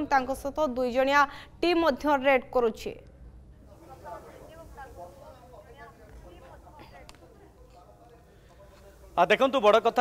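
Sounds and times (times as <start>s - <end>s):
faint indistinct voices talking: 3.6s - 10.0s.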